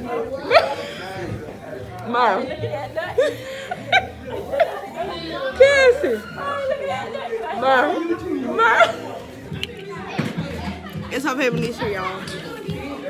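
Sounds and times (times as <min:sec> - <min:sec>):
people talking and laughing: 0:00.0 - 0:13.0.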